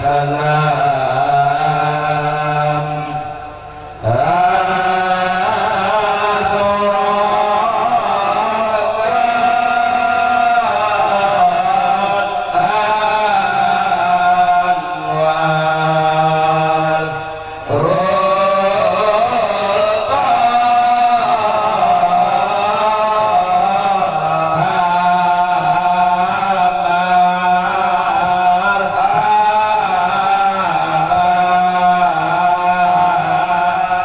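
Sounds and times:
men chanting into microphones: 0.0 - 34.0.

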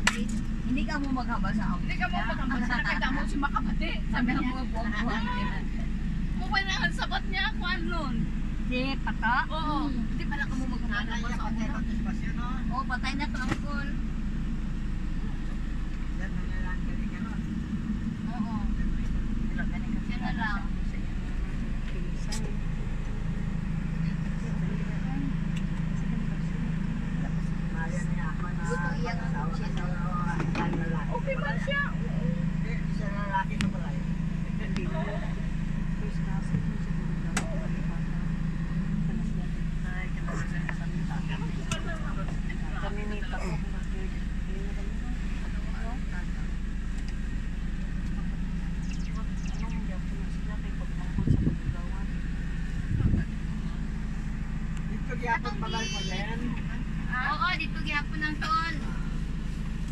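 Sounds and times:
vehicle engine and road rumble: 0.0 - 59.9
faint indistinct voices: 3.3 - 59.7.

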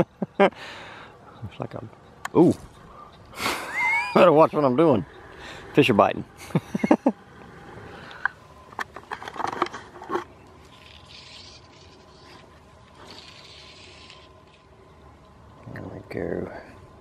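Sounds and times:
fly line hissing pulls: 10.6 - 14.7.

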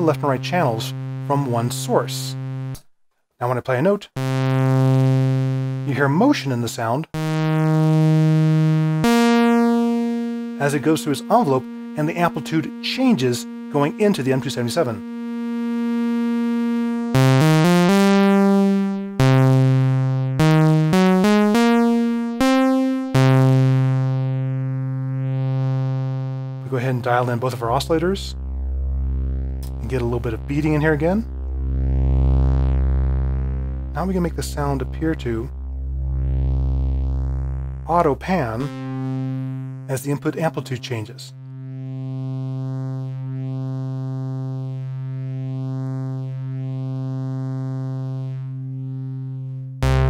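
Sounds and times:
sustained synthesizer notes: 0.0 - 2.8, 4.2 - 6.4, 7.2 - 50.0.

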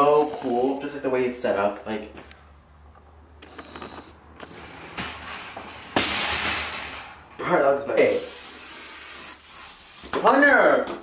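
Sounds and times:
cart clicks and knocks: 3.6 - 7.4
wire shopping cart rattling: 4.8 - 7.3.

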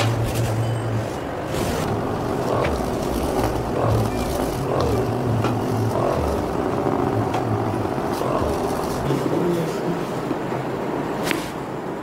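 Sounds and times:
massage gun buzzing: 1.8 - 9.3.

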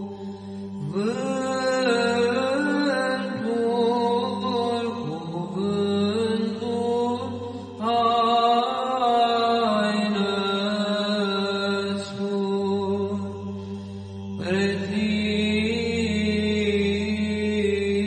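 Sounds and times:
held vocal drone: 0.0 - 18.0
voices chanting ornamented melody: 0.0 - 18.0.

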